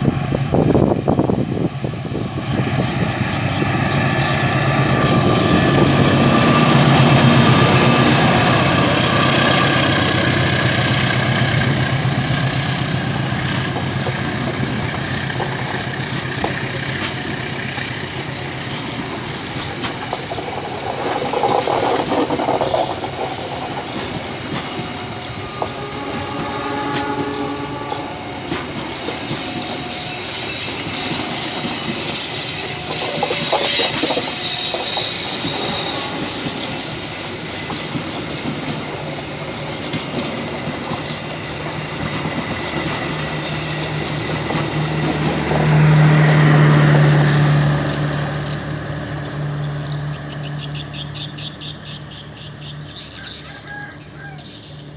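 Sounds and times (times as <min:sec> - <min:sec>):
train wheels clattering over rail joints: 0:04.4 - 0:27.2, 0:27.8 - 0:46.6
wheel squeals: 0:18.2 - 0:45.7.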